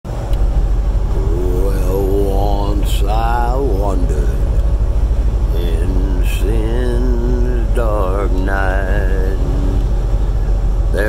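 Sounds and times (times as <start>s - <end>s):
engine and road noise in cab: 0.1s - 11.0s
man singing: 1.1s - 4.6s, 5.5s - 9.9s.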